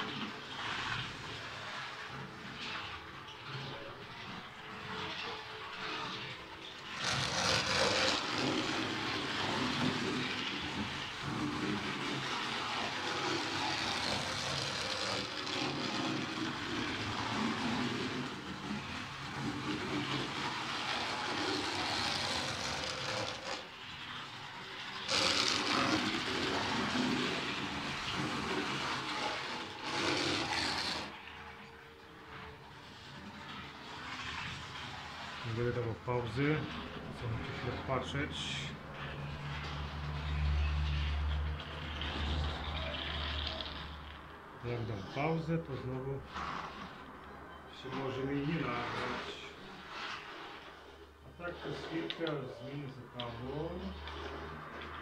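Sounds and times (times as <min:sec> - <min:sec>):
model train motor and wheels running: 0:00.0 - 0:47.1.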